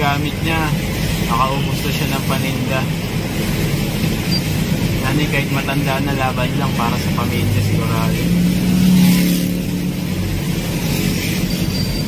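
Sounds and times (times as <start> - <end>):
road noise from inside vehicle: 0.0 - 12.0
vehicle engine hum: 0.0 - 12.0.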